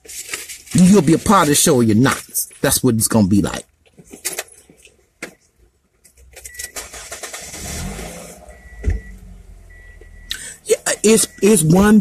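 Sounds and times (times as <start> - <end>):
vehicle rumble: 6.2 - 12.0
thump: 8.8 - 9.1.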